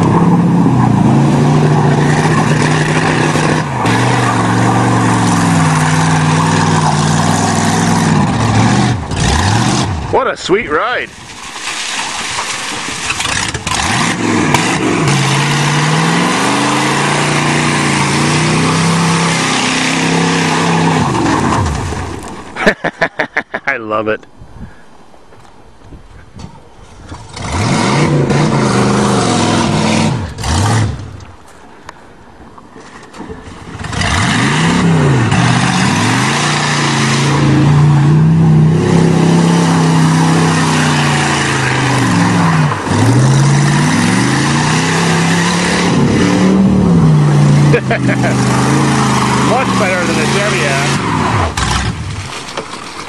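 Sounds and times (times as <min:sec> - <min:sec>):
car engine revving: 0:00.0 - 0:10.2, 0:13.1 - 0:22.0, 0:27.2 - 0:31.2, 0:33.7 - 0:52.3
wheels spinning in mud: 0:11.2 - 0:22.7, 0:32.8 - 0:53.0.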